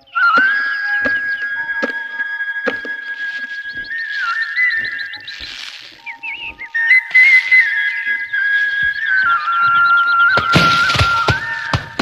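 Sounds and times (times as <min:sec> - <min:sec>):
steady whistle-like tone: 0:00.0 - 0:12.0.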